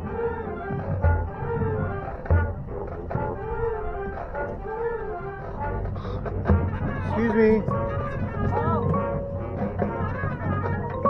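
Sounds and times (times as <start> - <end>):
marching band melody: 0.0 - 11.0.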